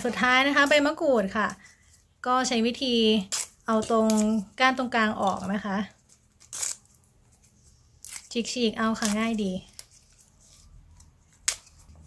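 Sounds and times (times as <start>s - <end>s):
leaves tearing and snapping: 6.4s - 6.8s, 8.0s - 10.0s, 11.3s - 11.9s.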